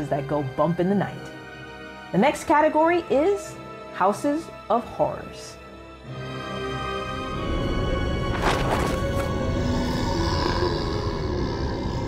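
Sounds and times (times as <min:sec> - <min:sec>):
deep rumbling drone: 0:07.4 - 0:12.0.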